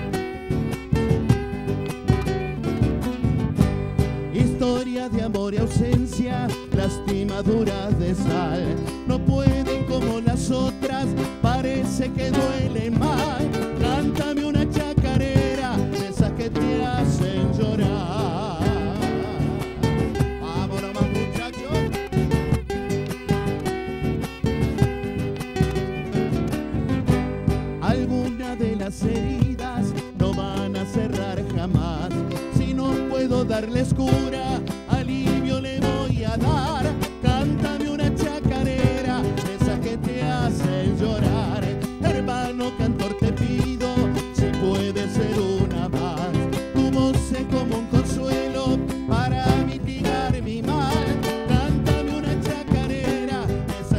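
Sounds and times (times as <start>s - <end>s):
bass drum steady beat: 0.0s - 53.9s
strummed acoustic guitars: 0.0s - 53.9s.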